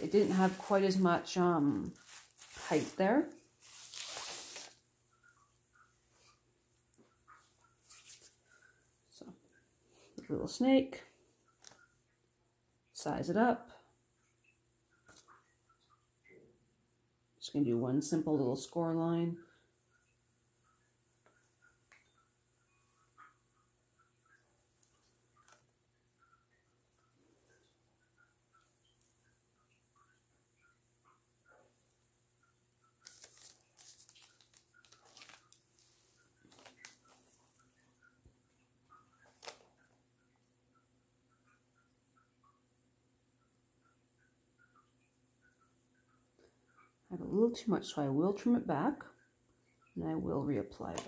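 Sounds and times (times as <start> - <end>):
hands working soft clay: 0.0 - 4.8.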